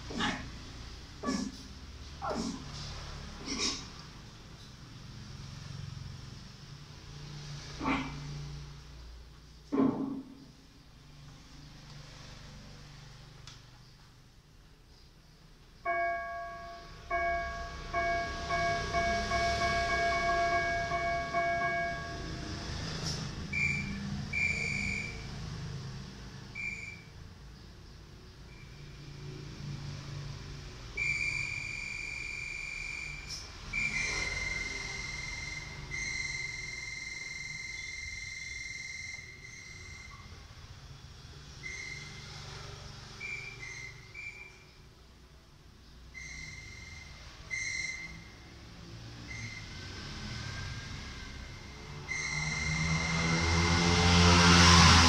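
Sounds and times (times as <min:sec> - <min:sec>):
whistle-like electronic keyboard: 0:23.5 - 0:25.3, 0:30.9 - 0:40.4, 0:41.6 - 0:42.4, 0:43.2 - 0:44.8, 0:46.1 - 0:48.5, 0:49.2 - 0:49.8, 0:52.0 - 0:53.0.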